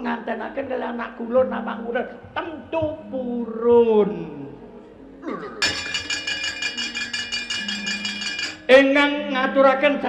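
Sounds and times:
metal plates clinking: 5.6 - 8.7.

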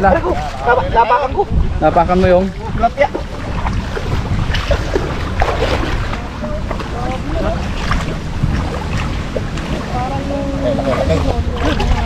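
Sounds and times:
water sloshing and splashing: 0.0 - 12.0
wind rumble on microphone: 0.0 - 12.0
faint voices: 9.2 - 12.0.

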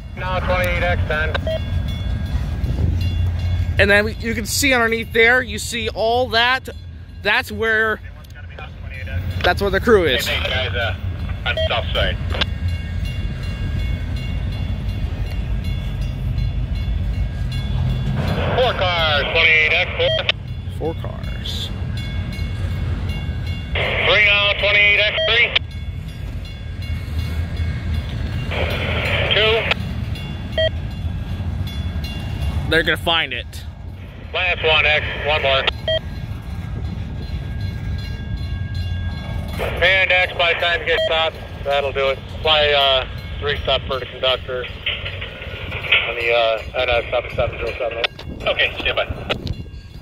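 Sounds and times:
freight train wheels rumbling: 0.0 - 50.0.

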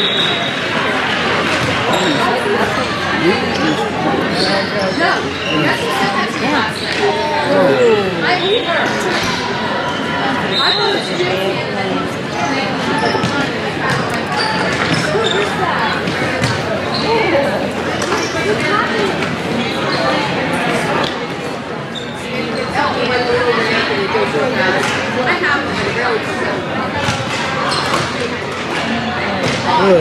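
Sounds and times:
voices in echoing hall: 0.0 - 30.0.

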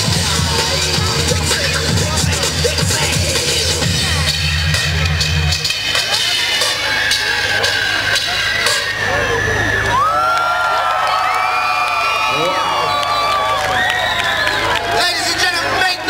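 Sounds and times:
dance music with heavy bass: 0.0 - 9.8
crowd cheering and screaming: 6.1 - 16.0.

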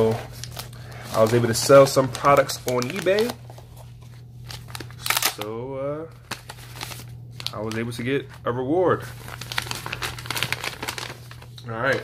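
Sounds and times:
packaging crinkling: 0.0 - 5.5, 6.1 - 12.0
steady low hum: 0.0 - 12.0.

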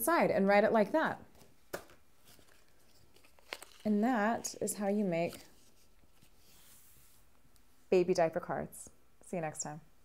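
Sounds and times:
woman's voice: 3.9 - 5.4, 7.9 - 9.8.

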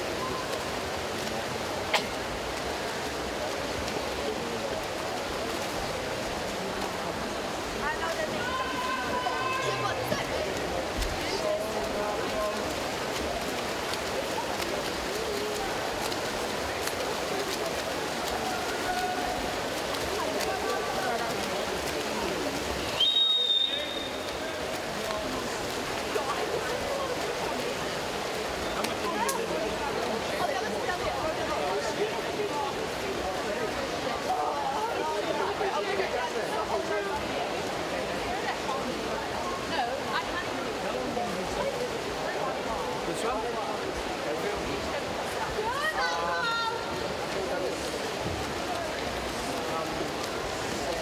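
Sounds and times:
murmur of spectators: 0.0 - 51.0
swimmers splashing: 0.0 - 51.0.

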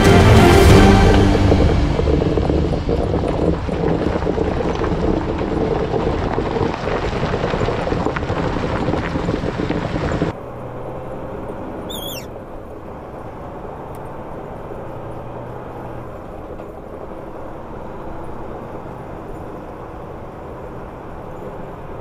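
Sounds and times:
low hum: 0.0 - 10.3
steady rumble: 0.0 - 10.4
wind and road rush: 0.0 - 22.0
falling whistle: 11.9 - 12.3.

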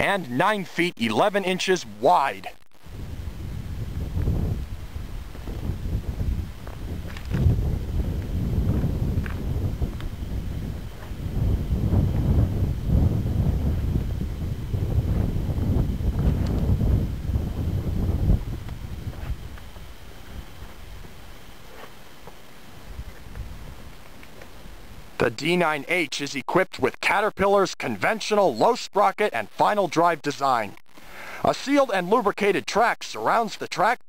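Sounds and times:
wind buffeting microphone: 2.8 - 21.6, 22.7 - 25.2.

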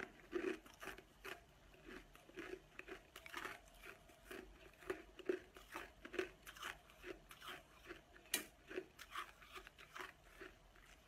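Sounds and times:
ice being chewed: 0.0 - 11.0.

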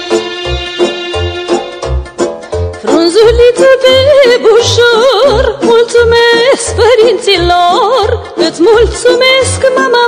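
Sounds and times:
band with steady beat: 0.0 - 4.7
woman singing folk song: 2.8 - 10.0.

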